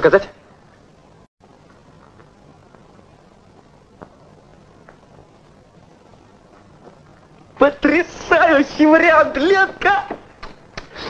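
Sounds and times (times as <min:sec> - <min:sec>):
film soundtrack hiss: 0:00.0 - 0:11.0.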